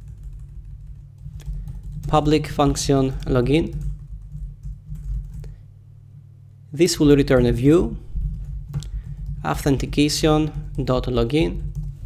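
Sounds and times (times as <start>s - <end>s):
keyboard keystrokes: 0.0s - 5.5s
steady low hum: 0.0s - 12.0s.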